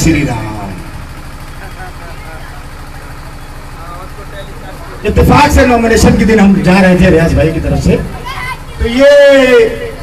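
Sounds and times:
low pulsing engine hum: 0.0s - 10.0s.

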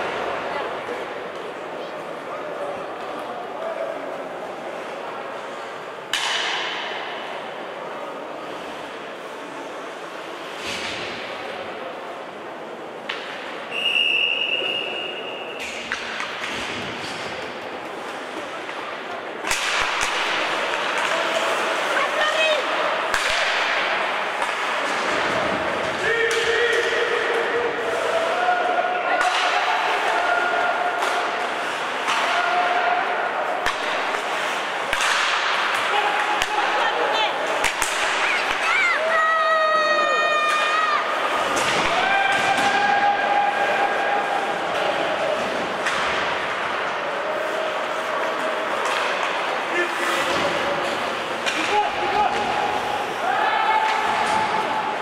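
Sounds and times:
hockey sticks and puck clacking: 2.8s - 7.5s, 12.9s - 55.0s
referee's whistle: 13.7s - 15.6s
skates scraping ice: 14.6s - 55.0s.

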